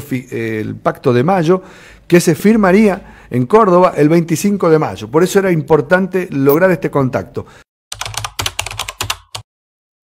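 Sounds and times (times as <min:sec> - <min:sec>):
computer keyboard typing: 0:07.9 - 0:09.5.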